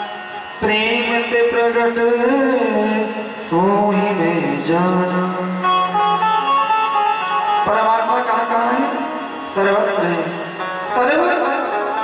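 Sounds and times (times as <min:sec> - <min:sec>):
man chanting into microphone: 0:00.6 - 0:05.6.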